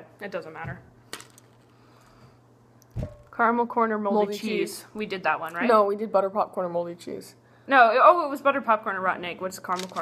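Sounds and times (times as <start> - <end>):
thud: 3.0 - 3.3.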